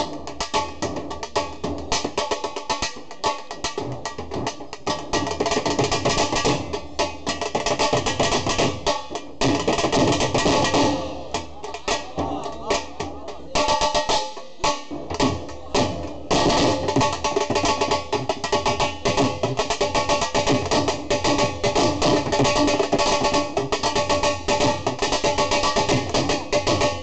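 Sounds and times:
barrel drums beaten fast: 0.0 - 27.0.

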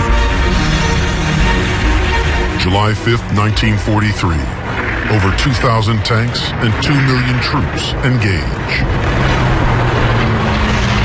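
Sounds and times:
higher hum: 0.0 - 11.0
tank engines rumbling: 0.0 - 11.0.

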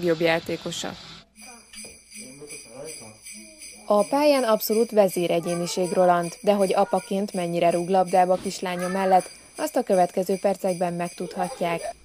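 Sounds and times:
jingling sleigh bells: 1.3 - 12.0.

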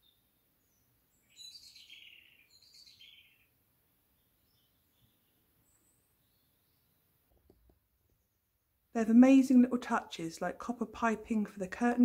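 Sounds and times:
faint bird chirps: 0.0 - 7.2.

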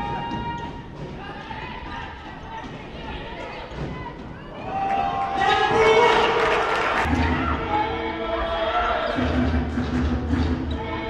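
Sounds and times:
voices of players and crowd: 0.0 - 11.0.

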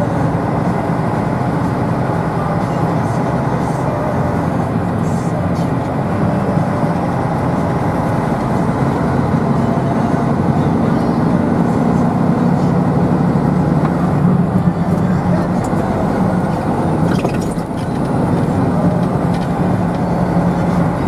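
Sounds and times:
vehicle engine and road noise: 0.0 - 21.0.

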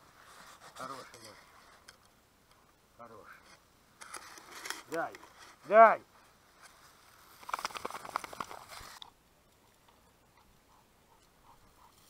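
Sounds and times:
rustling in dry grass: 0.0 - 1.9, 4.0 - 12.0.

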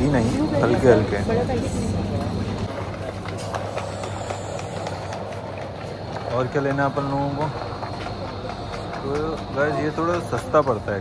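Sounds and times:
store background hum: 0.0 - 11.0
basket wheels rolling on tiles: 2.2 - 11.0.

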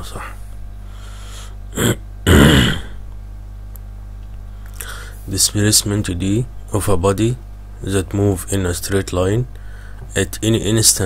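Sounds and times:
low electrical hum: 0.0 - 11.0
man clearing his throat: 1.7 - 3.0.

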